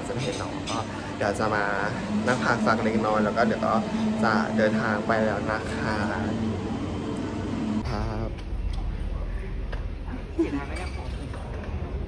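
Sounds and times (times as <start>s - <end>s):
low station rumble: 0.9s - 10.5s.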